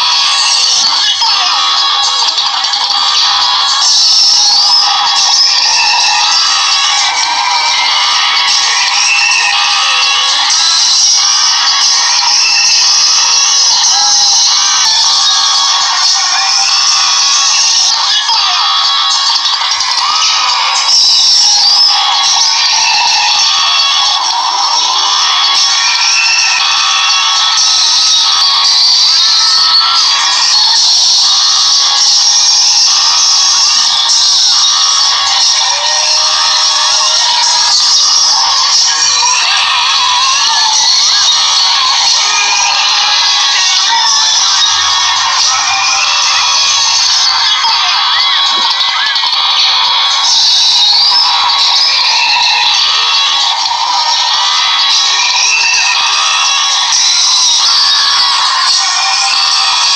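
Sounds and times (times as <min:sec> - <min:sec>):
high-pitched cartoon voices: 0:00.0 - 0:59.9.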